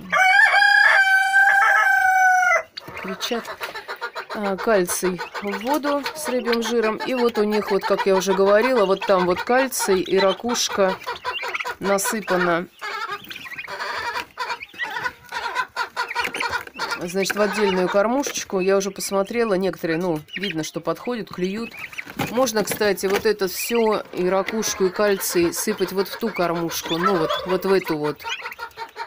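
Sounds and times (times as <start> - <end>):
fowl calling: 0.2 - 18.2, 23.7 - 29.0
turkey poults peeping: 0.2 - 29.0.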